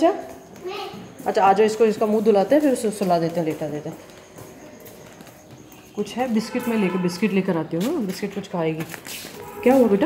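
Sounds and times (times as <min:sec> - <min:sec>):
faint distant voices: 0:00.0 - 0:10.0
footsteps on hard floor: 0:00.0 - 0:10.0.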